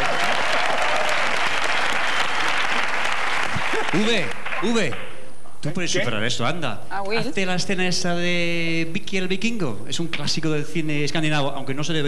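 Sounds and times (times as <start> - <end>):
studio audience applauding: 0.0 - 5.2.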